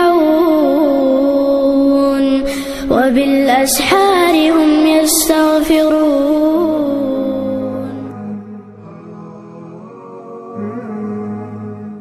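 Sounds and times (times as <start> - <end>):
short breath: 2.4 - 2.9.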